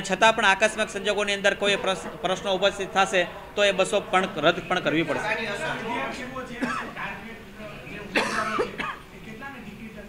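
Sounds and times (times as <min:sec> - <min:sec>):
person coughing: 0:06.6 - 0:06.9, 0:08.2 - 0:09.0.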